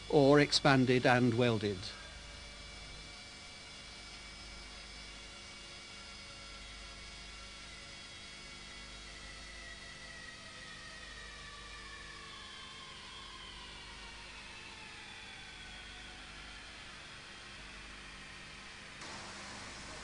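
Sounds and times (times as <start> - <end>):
low hum: 19.0 - 20.0
steady hiss: 19.0 - 20.0
tube expander motor whine: 19.0 - 20.0.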